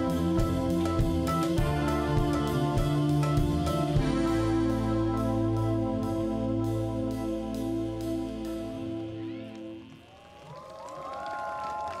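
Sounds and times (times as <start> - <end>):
audience whooping and cheering: 9.4 - 12.0.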